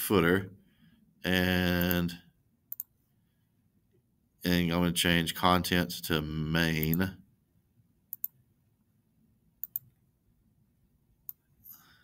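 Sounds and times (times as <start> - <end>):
computer mouse clicking: 2.7 - 2.9, 8.1 - 8.4, 9.6 - 9.9.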